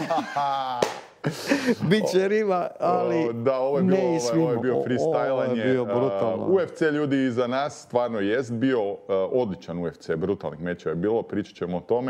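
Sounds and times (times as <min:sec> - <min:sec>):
men laughing heartily: 0:00.0 - 0:02.2.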